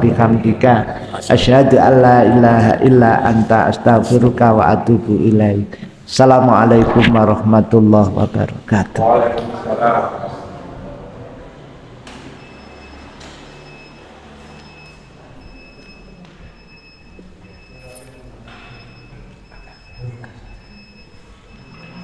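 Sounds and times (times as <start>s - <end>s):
people moving about: 9.2s - 22.0s.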